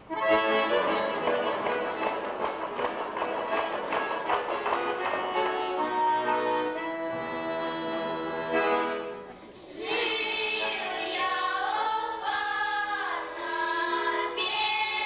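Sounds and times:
accordion playing: 0:00.0 - 0:09.4.

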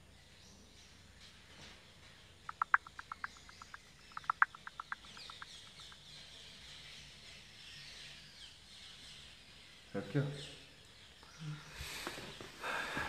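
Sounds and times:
sharp chirping: 0:02.4 - 0:06.2
faint high chirps: 0:02.4 - 0:08.3.

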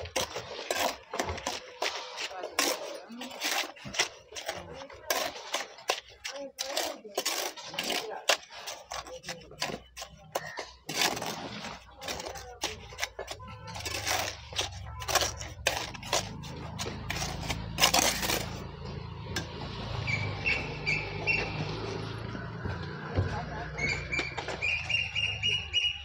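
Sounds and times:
trowel scraping and tapping: 0:00.0 - 0:19.8.

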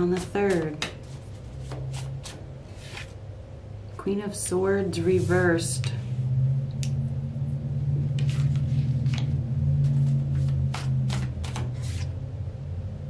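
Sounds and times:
steady low hum: 0:00.0 - 0:13.0
cards flicking and rustling: 0:00.1 - 0:03.2, 0:08.2 - 0:12.1.

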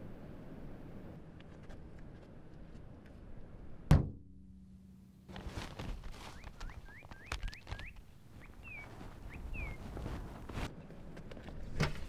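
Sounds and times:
outdoor ambience: 0:00.0 - 0:12.0
thump: 0:03.9 - 0:04.3
bird singing whistled notes: 0:06.3 - 0:09.8.

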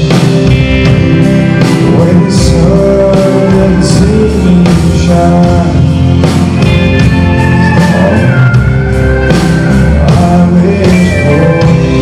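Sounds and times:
guitar accompaniment: 0:00.0 - 0:12.0
live band backing: 0:00.0 - 0:12.0
man singing: 0:01.5 - 0:08.8, 0:09.6 - 0:12.0.

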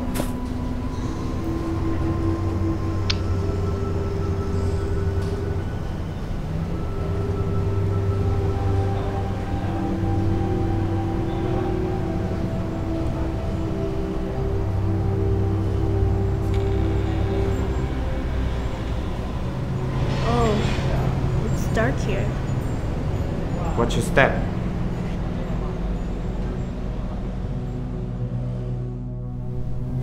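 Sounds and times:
low sustained drone tones: 0:00.0 - 0:30.0
wavering bending tone: 0:00.0 - 0:30.0.

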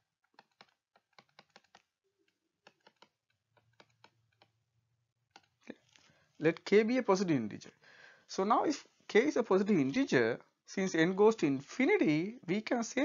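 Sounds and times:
stylus tapping on tablet screen: 0:00.0 - 0:05.7.

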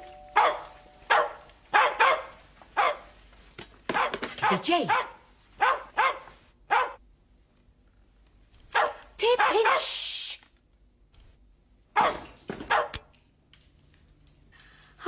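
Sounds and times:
dog barking: 0:00.4 - 0:03.1, 0:03.9 - 0:07.0, 0:08.7 - 0:09.9, 0:12.0 - 0:13.1.

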